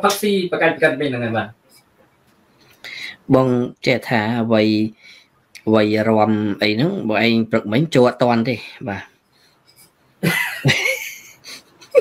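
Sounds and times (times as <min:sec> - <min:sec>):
man laughing breathily: 0:10.2 - 0:12.0.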